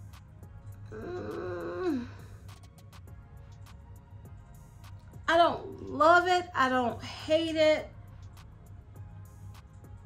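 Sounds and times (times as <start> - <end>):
woman humming hmm of doubt: 0.9 - 2.3.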